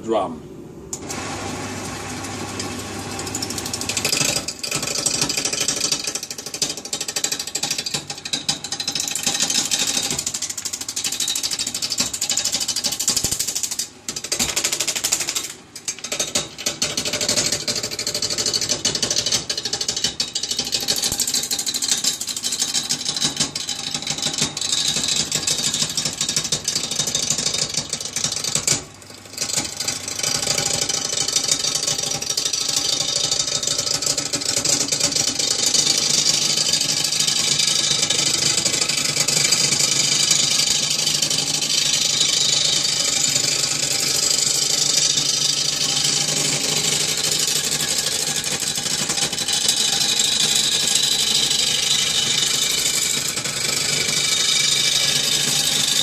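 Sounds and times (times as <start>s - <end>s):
lathe tool cutting wood: 1.0s - 8.0s, 17.0s - 28.6s, 29.3s - 56.0s.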